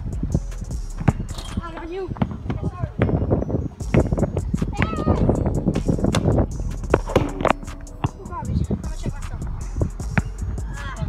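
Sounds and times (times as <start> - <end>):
basketball bouncing on hard court: 1.0 - 5.2, 6.9 - 8.2
voices calling out: 7.0 - 11.0.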